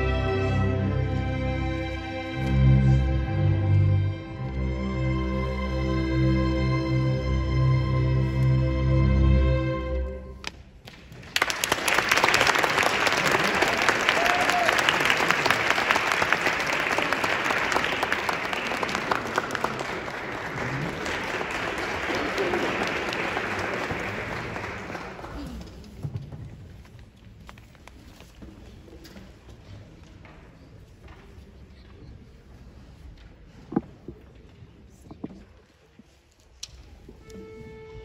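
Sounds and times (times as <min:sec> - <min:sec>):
audience applause: 0:11.1 - 0:26.0.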